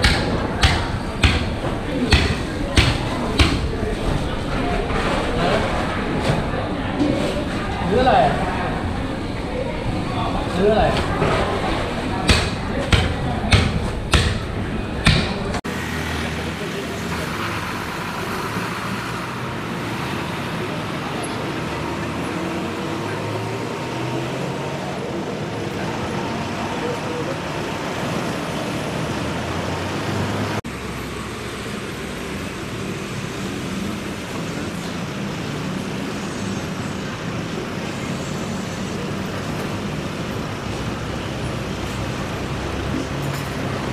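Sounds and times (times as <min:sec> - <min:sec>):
city street traffic: 0:00.0 - 0:43.9.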